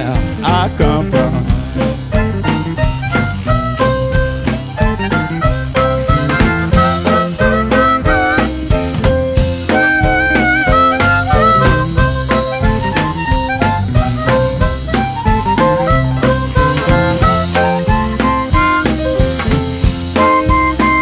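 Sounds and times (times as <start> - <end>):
blues band playing: 0.0 - 21.0
blues harmonica solo: 0.0 - 21.0.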